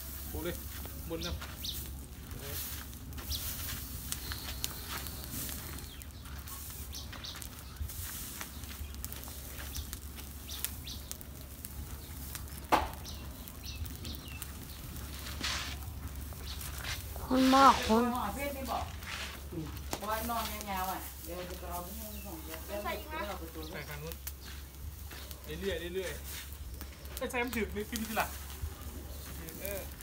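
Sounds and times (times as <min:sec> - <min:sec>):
burning straw crackling: 0:00.0 - 0:30.0
bird chirps: 0:04.1 - 0:09.0.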